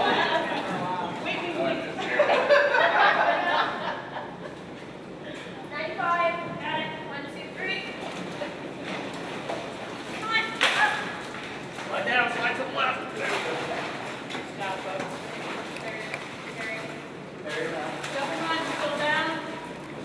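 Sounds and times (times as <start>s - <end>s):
steady background noise: 0.0s - 20.0s.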